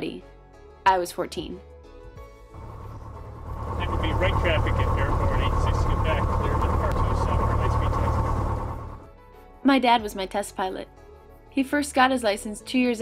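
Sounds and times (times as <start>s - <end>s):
airplane engine and propeller: 2.6s - 9.1s.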